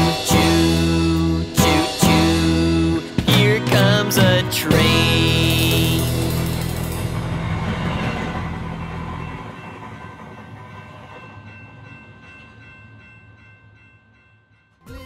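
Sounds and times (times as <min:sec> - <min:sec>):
held music chord: 0:00.0 - 0:09.4
train running on rails: 0:00.0 - 0:15.0.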